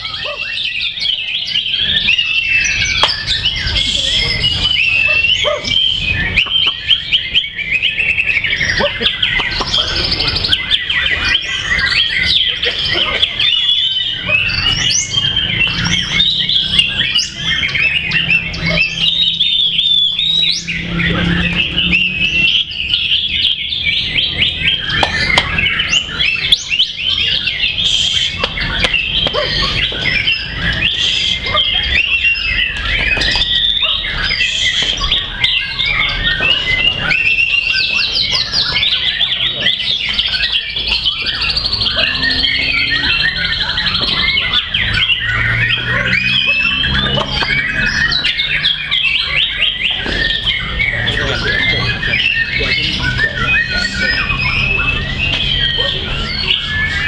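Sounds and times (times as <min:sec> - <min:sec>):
other birds singing: 0:00.0 - 0:57.0
songbird chirps trills and whistles: 0:00.0 - 0:57.0.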